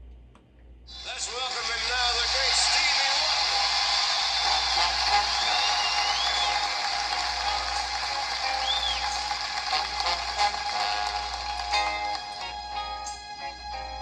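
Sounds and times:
whistles: 0.9s - 10.0s
audience applause: 0.9s - 13.3s
band music: 0.9s - 14.0s.

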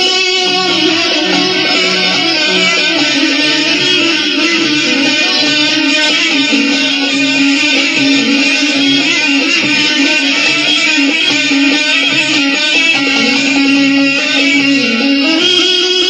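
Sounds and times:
plucked guitar: 0.0s - 16.0s.

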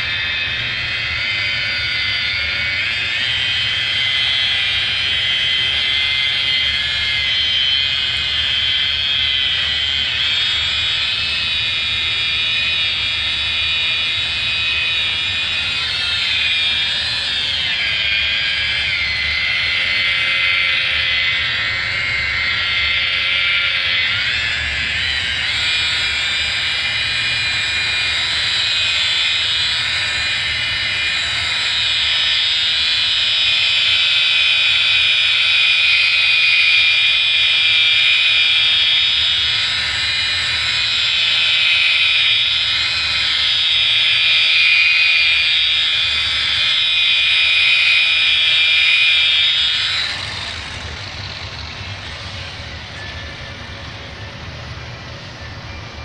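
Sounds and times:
rotary polisher motor whine: 0.0s - 56.0s.

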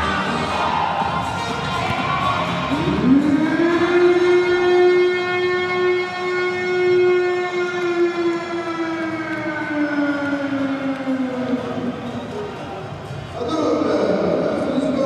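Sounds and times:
siren-like wail: 2.6s - 12.2s.

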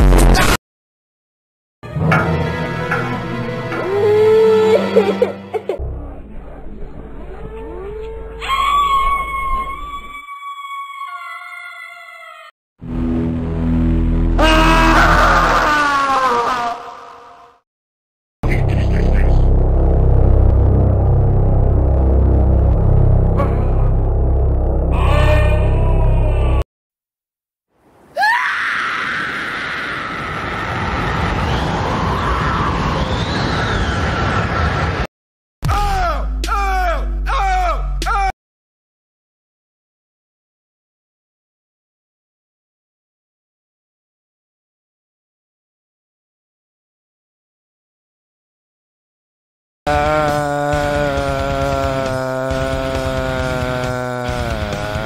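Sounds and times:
long harsh scream: 14.4s - 17.6s, 28.1s - 33.8s, 49.9s - 55.0s
heavy low rumble: 18.4s - 25.0s
singer holding long note: 49.9s - 55.0s.

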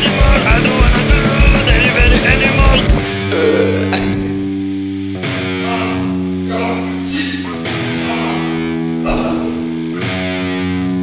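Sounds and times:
distorted electric guitar chords: 0.0s - 11.0s.

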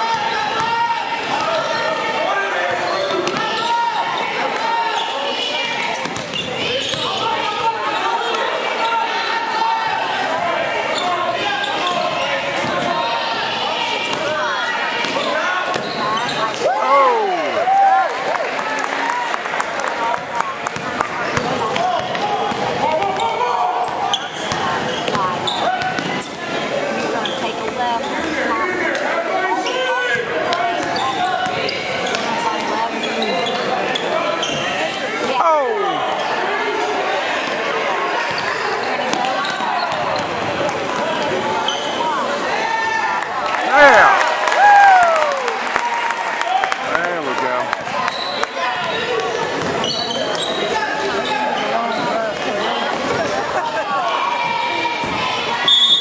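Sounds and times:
voices of spectators and players: 0.0s - 56.0s.

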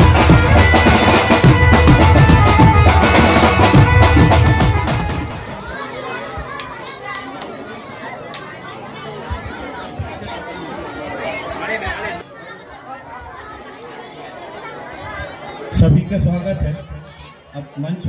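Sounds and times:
chatter of many voices: 0.0s - 18.0s.

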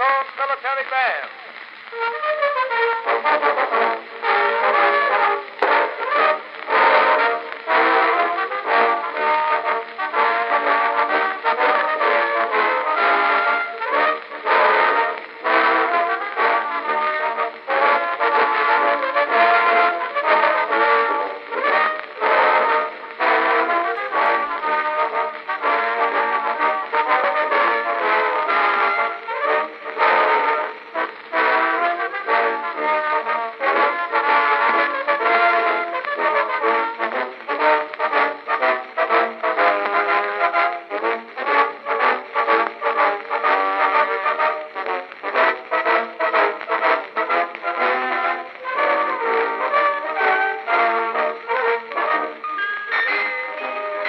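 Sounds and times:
military brass band music: 0.0s - 54.0s.

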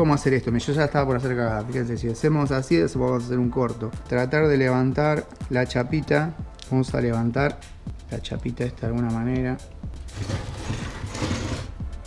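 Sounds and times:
battery pack scraping on wood: 10.1s - 11.8s.

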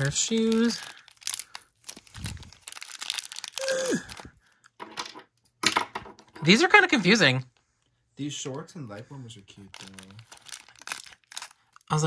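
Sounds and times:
plastic bag crinkling: 0.0s - 4.6s, 9.6s - 12.0s.

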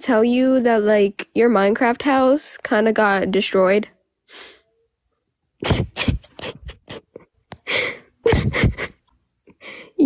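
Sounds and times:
soft breath: 9.5s - 10.0s.

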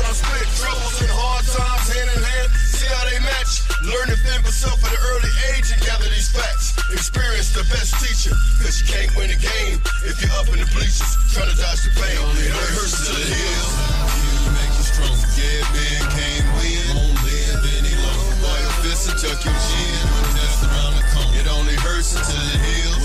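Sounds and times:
heavy bass and drum hits: 0.0s - 2.9s, 7.2s - 8.8s, 13.3s - 23.0s
rapping over a beat: 0.0s - 23.0s.

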